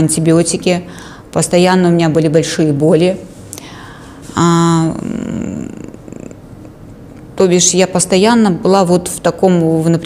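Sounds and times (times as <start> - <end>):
woman's creaky voice: 4.4 - 7.8.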